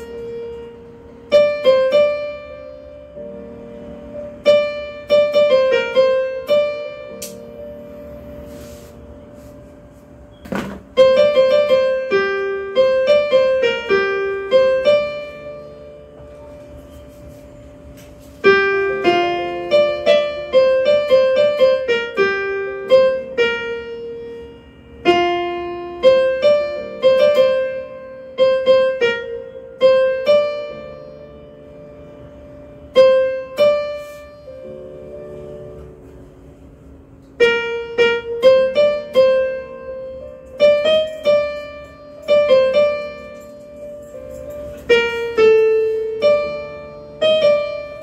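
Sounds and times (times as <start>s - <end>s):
electronic keyboard notes: 0.0s - 48.0s
short thump: 10.4s - 11.0s.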